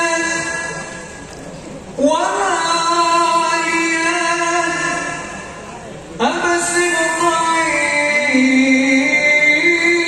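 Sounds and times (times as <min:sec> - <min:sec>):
devotional singing over loudspeakers: 0:00.0 - 0:01.3, 0:02.0 - 0:10.0.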